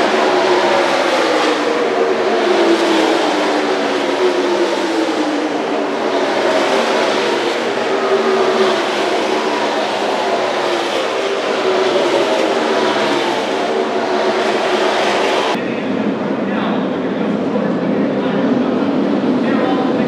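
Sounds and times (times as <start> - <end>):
race car engines passing at full throttle: 0.0 - 20.0.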